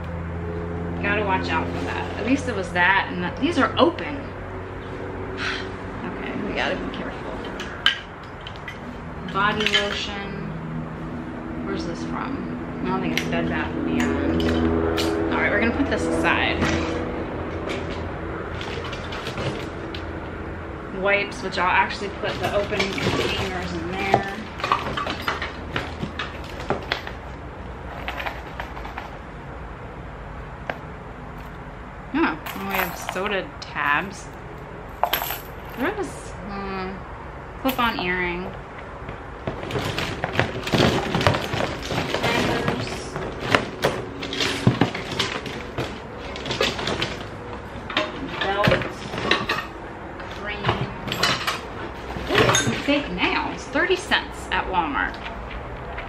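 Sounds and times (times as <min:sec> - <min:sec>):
low steady rumble: 0:00.0 - 0:56.0
clothes hangers clattering in box: 0:07.4 - 0:10.1, 0:21.8 - 0:27.2, 0:27.9 - 0:29.2, 0:32.4 - 0:33.4, 0:39.5 - 0:49.7, 0:50.3 - 0:53.1.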